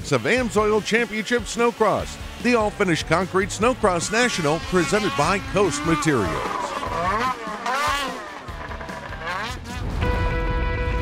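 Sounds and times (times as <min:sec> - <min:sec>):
background music: 0:00.0 - 0:11.0
snowmobile engine revving: 0:00.0 - 0:11.0.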